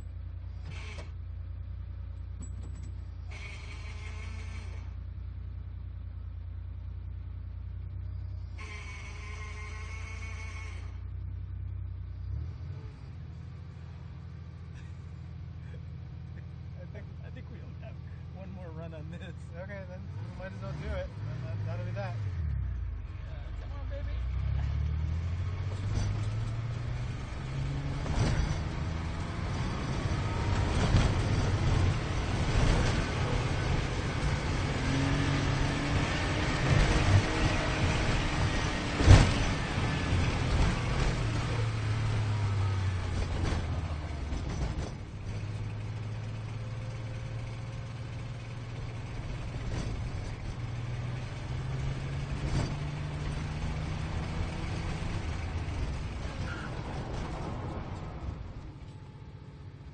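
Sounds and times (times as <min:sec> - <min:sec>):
car engine revving through gears: 0:19.9 - 0:59.4.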